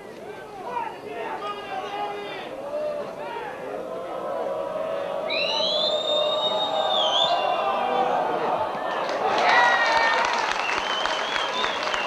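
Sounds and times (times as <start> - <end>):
crowd voices: 0.0 - 12.0
long shrill whistle: 5.3 - 7.8.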